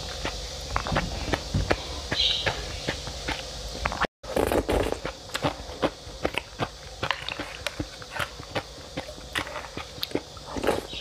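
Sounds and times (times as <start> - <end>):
chewing with crunches and wet clicks: 0.0 - 11.0.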